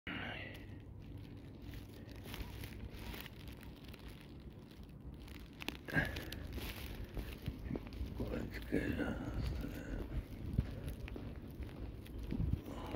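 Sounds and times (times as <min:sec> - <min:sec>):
scuffing handling sounds: 0:01.1 - 0:04.2, 0:05.2 - 0:12.9
wind rumbling on microphone: 0:02.2 - 0:12.9.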